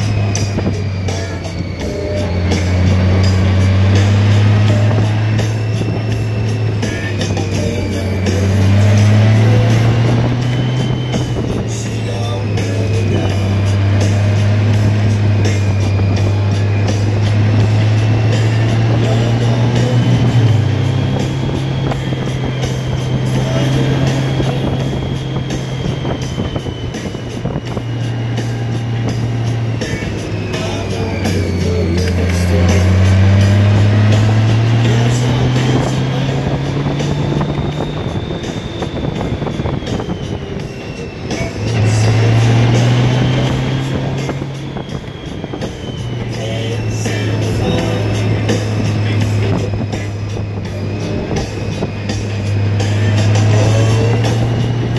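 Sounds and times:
motorcycle engine: 0.0 - 54.9
wind noise: 0.0 - 54.9.

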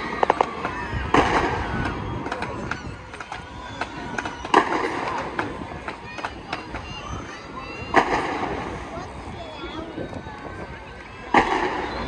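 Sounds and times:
fireworks banging: 0.0 - 7.2, 7.8 - 9.1, 11.2 - 12.0
fireworks crackling: 0.0 - 9.5, 11.2 - 12.0
spectators' voices: 0.0 - 12.0.

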